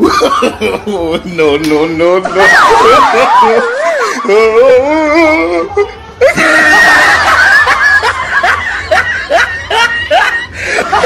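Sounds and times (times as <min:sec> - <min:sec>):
person laughing: 0:00.0 - 0:01.4, 0:02.4 - 0:11.0.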